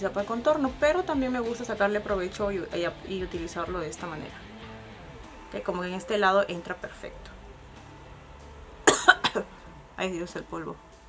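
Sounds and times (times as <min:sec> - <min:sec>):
woman coughing: 0:08.8 - 0:09.6.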